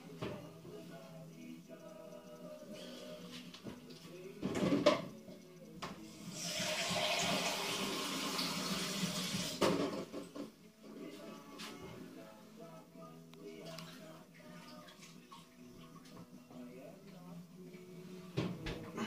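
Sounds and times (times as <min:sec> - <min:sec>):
faint background music: 0:00.0 - 0:19.0.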